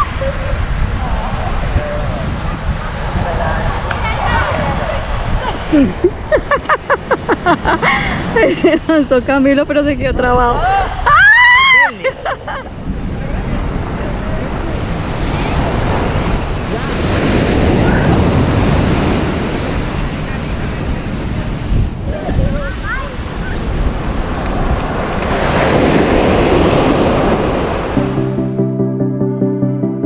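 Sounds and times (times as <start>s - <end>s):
surf breaking on beach: 0.0s - 10.0s, 10.6s - 28.3s
wind buffeting microphone: 0.0s - 28.2s.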